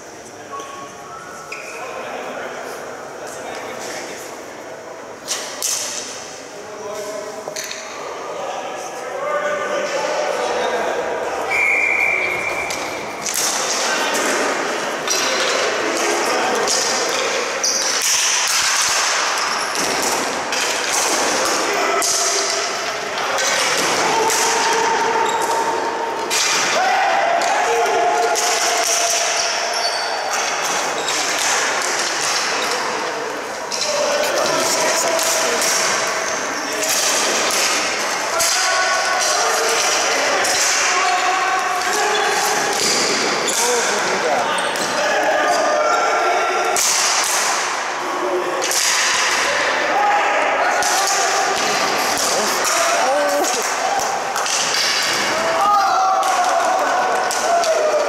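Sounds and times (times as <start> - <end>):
players calling out: 9.1 - 58.0.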